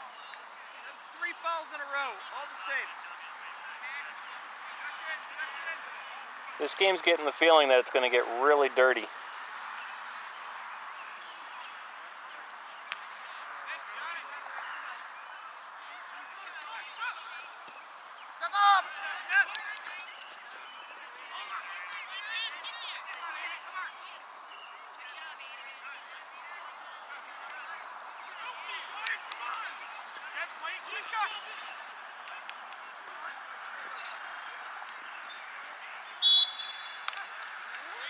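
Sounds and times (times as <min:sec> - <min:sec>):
distant voices: 0:00.0 - 0:38.0
loud shouted calls: 0:00.0 - 0:38.0.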